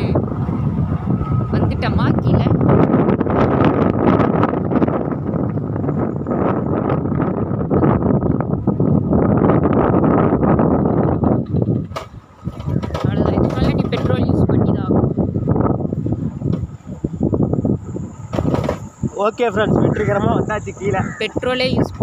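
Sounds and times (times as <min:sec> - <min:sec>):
motorbike engine and road noise: 0:00.0 - 0:22.0
wind buffeting microphone: 0:00.0 - 0:22.0.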